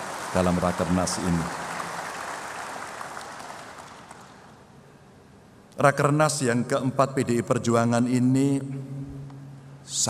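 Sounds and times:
audience applause: 0:00.0 - 0:04.4.

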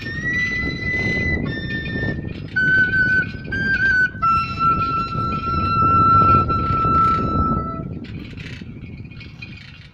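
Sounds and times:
cane flute long note: 0:00.0 - 0:07.9.

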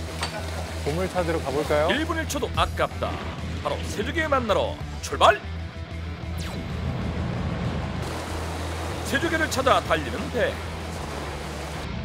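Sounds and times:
boat engine drone: 0:07.0 - 0:12.0
water rushing along hull: 0:08.0 - 0:12.0.

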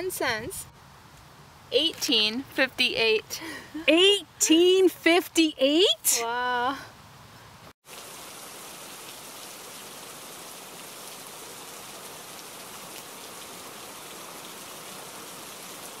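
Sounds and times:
steady rain-like hiss: 0:00.0 - 0:02.3, 0:06.9 - 0:16.0.

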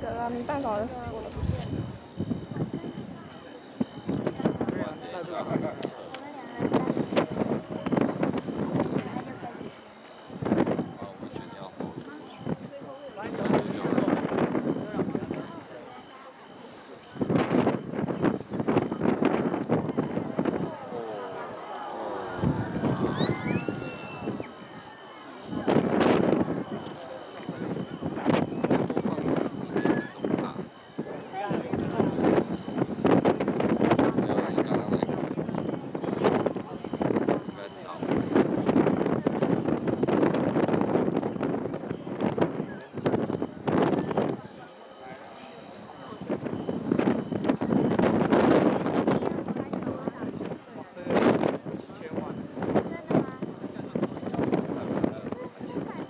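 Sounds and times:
spectators' voices: 0:00.0 - 0:56.0.

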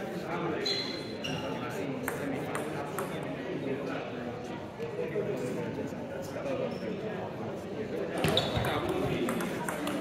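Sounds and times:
murmur of voices in hall: 0:00.0 - 0:10.0
brief high squeak: 0:00.6 - 0:01.6, 0:08.2 - 0:08.7
table tennis ball bouncing: 0:02.0 - 0:03.2, 0:08.2 - 0:10.0.

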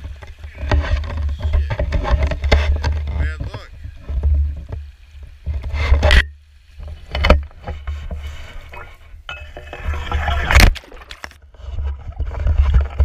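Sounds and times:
sharp knocks: 0:00.0 - 0:07.8
dry grass rustling: 0:00.0 - 0:13.0
low rumble and water sloshing: 0:00.0 - 0:13.0.

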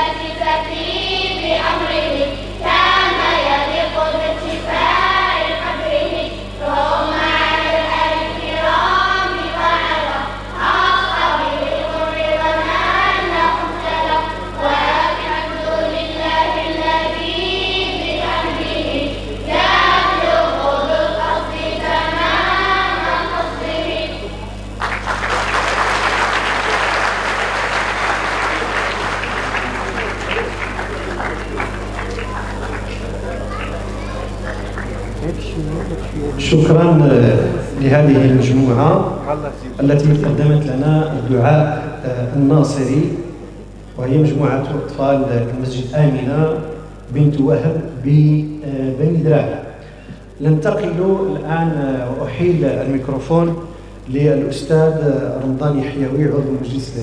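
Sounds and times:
girls singing in unison: 0:00.0 - 0:24.4
steady low hum: 0:00.0 - 0:57.0
audience applause: 0:24.8 - 0:36.5.

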